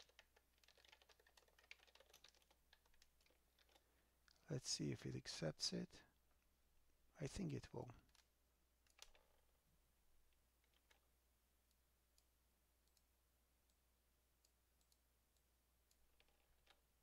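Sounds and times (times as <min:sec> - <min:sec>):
keyboard and mouse clicks: 0:00.0 - 0:04.5, 0:08.1 - 0:09.4, 0:10.6 - 0:11.1, 0:14.4 - 0:16.8.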